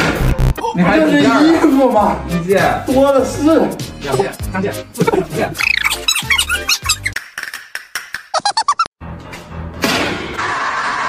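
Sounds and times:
cartoon high squeaks: 0:05.0 - 0:07.2, 0:08.4 - 0:08.9.

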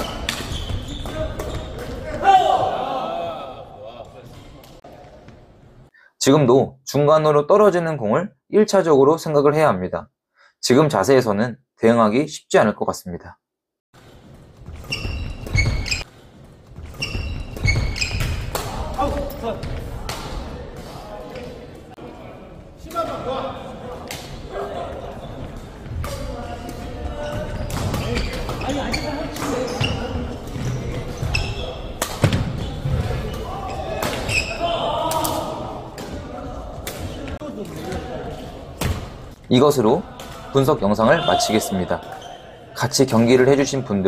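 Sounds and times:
voices in echoing hall: 0:00.0 - 0:09.7, 0:17.9 - 0:44.0.

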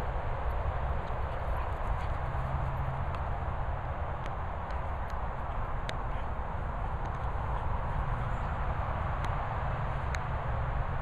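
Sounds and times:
dog paws galloping on grass: 0:00.0 - 0:11.0
low outdoor rumble: 0:00.0 - 0:11.0.

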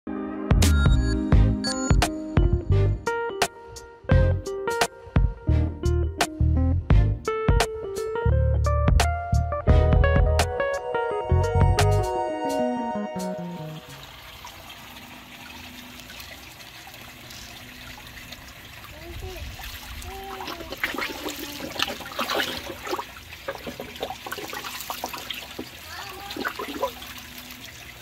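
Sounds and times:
water trickling into tank: 0:13.6 - 0:28.0
fish splashing at surface: 0:19.6 - 0:27.2.

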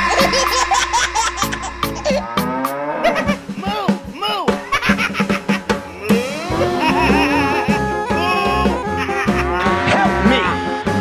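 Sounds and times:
background music: 0:00.0 - 0:11.0
cow mooing: 0:02.2 - 0:03.2.

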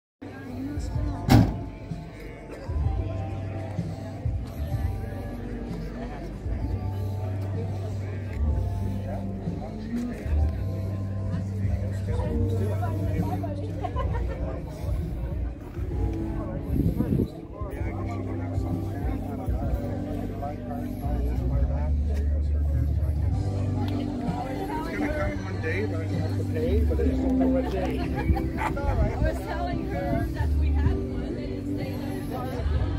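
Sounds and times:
background talk: 0:00.2 - 0:32.9
voices: 0:00.2 - 0:32.9
vehicle engine rumbling: 0:00.3 - 0:32.9
loud thump: 0:01.2 - 0:01.7.

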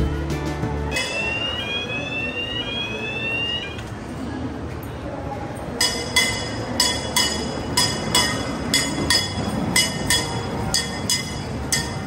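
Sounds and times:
electronic crossing warning tones: 0:01.0 - 0:03.9.

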